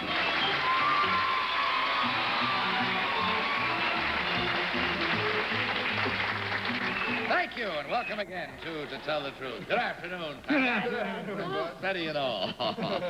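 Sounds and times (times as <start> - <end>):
studio audience applauding: 0.0 - 9.3
game show theme music: 0.1 - 7.7.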